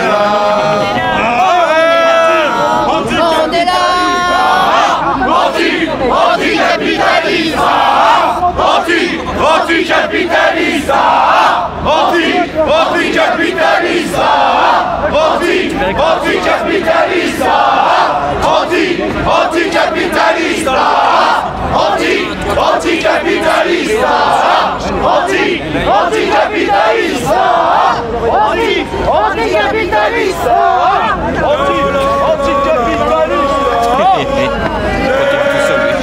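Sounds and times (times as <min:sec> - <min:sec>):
crowd shouting and chanting: 0:00.0 - 0:36.0.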